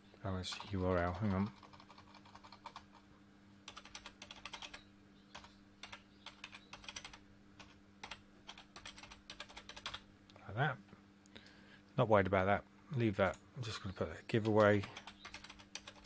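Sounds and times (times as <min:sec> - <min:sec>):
faint low hum: 0:00.0 - 0:16.0
computer keyboard typing: 0:00.5 - 0:03.1, 0:03.7 - 0:10.0, 0:14.4 - 0:16.0.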